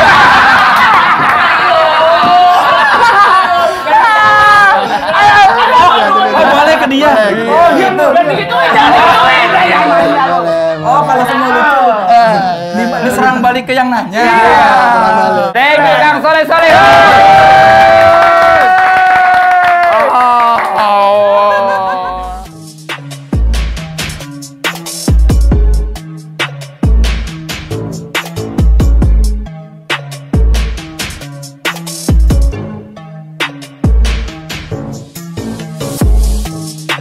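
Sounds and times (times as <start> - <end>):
men laughing loudly: 0.0 - 13.4, 19.2 - 22.5
men shouting: 1.6 - 22.5
men holding a shouted note: 14.2 - 22.5
hands clapping: 17.8 - 22.0.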